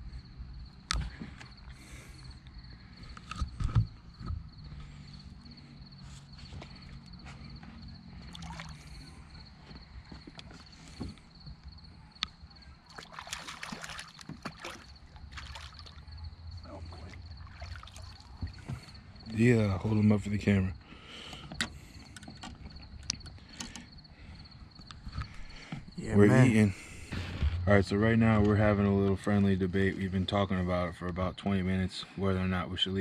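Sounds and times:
insect trill: 0.0 - 33.0
water splashing against boat: 12.8 - 19.0.

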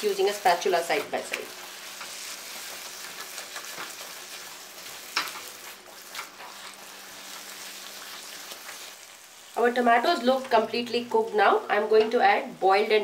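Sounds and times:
vegetables sizzling in a wok: 0.0 - 13.0
spatula stirring and mashing: 0.5 - 9.0.

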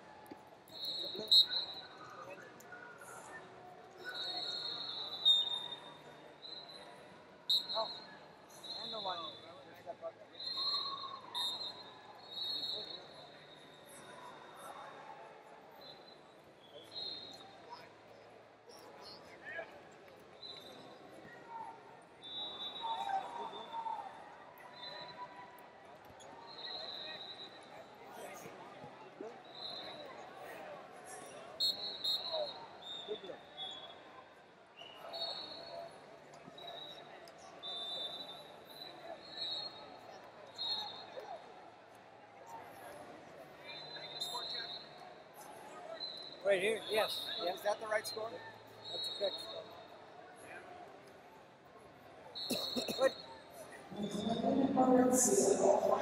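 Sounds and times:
short high whistle blasts: 0.7 - 2.0, 4.1 - 6.9, 7.5 - 9.5, 10.4 - 14.0, 22.2 - 23.9, 26.5 - 27.7, 29.5 - 30.1, 31.6 - 34.0, 37.6 - 41.2, 43.6 - 45.0, 48.8 - 49.8, 52.4 - 53.3.

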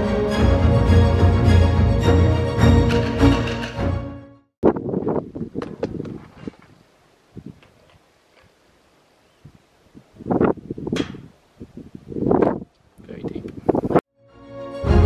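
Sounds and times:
wind gusting on microphone: 4.6 - 8.0, 9.4 - 14.0.

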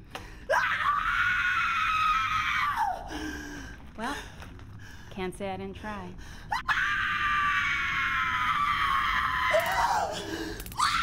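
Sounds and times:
woman screaming: 6.6 - 11.0.

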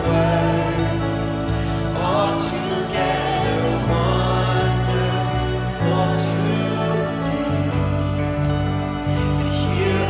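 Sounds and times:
band playing sustained chords: 0.0 - 10.0
person singing: 0.0 - 10.0.

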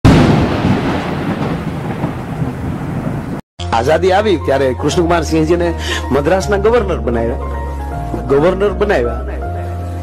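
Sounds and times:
thunder clap and rumble: 0.1 - 3.4.

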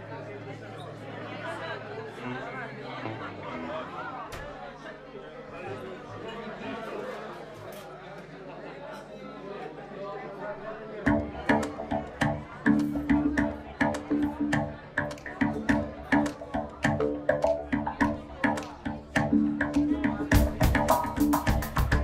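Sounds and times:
low chatter of voices: 0.0 - 22.0
live band playing accented hits: 11.1 - 22.0.

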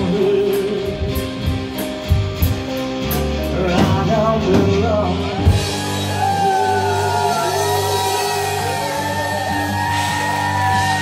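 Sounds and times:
live rock band sustained chord: 0.0 - 11.0
singer holding long note: 5.2 - 11.0.

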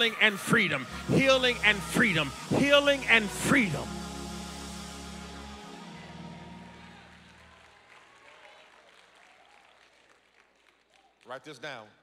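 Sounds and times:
applause: 6.6 - 12.0.

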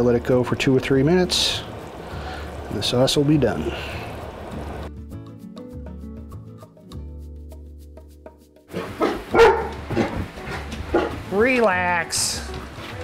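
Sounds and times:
music with plucked notes and bass: 4.7 - 13.0
dog barking loudly: 8.7 - 11.3.

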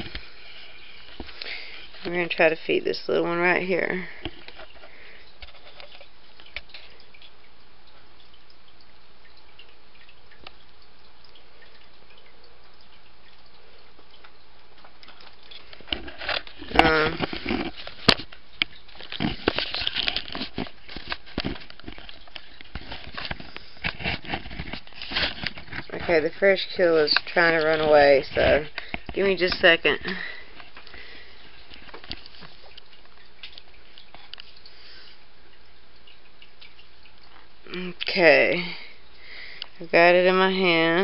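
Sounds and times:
background hiss: 24.8 - 41.0.

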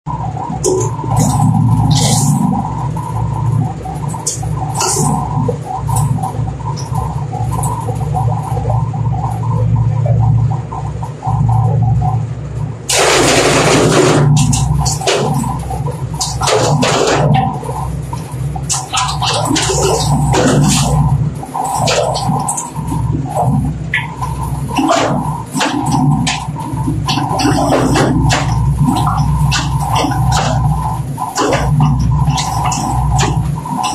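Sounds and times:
machine humming: 0.1 - 33.9.

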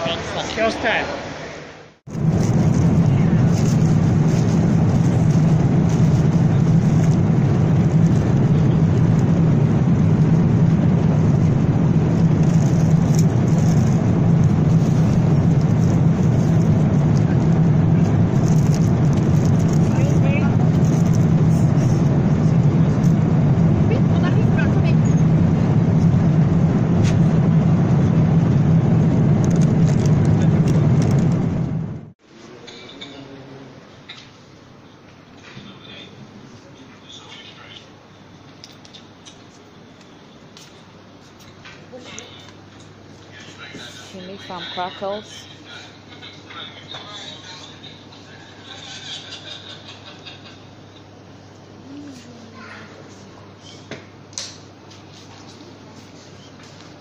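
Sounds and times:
jet airliner cabin roar: 0.0 - 34.8, 35.4 - 57.0.

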